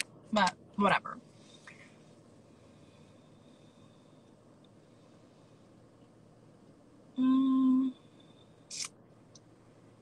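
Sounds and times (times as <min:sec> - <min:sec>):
low steady background hiss: 0:00.0 - 0:10.0.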